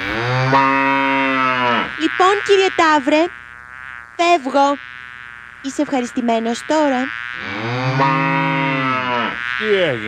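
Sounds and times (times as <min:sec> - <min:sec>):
bull mooing: 0:00.0 - 0:02.0, 0:07.4 - 0:10.0.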